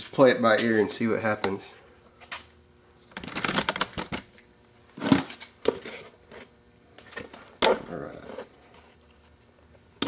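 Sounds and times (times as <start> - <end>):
objects clattering and rattling: 3.1 - 4.3.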